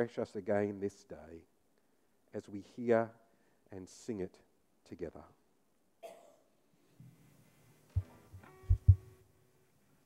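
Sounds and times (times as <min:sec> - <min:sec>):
dull low thumps: 0:08.0 - 0:09.1.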